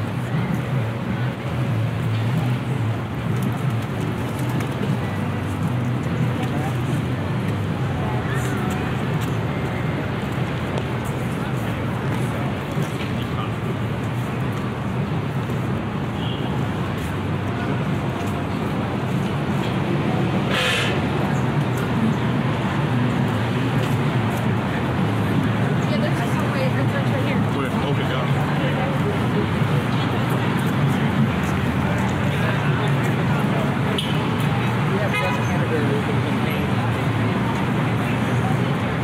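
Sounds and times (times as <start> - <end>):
people talking: 0.0 - 14.4, 16.9 - 39.0
passing cars: 0.0 - 39.0
short hiss: 20.5 - 21.0.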